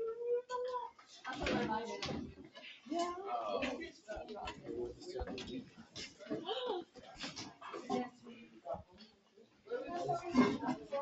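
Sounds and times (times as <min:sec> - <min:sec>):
students chatting: 0:00.0 - 0:11.0
teacher speaking: 0:00.0 - 0:11.0.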